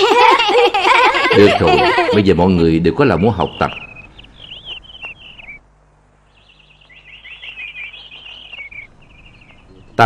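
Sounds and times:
small birds chirping: 0:01.2 - 0:10.0.

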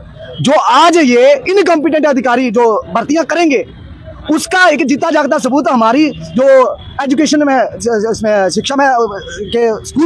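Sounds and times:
man talking into a microphone: 0:00.0 - 0:10.0.

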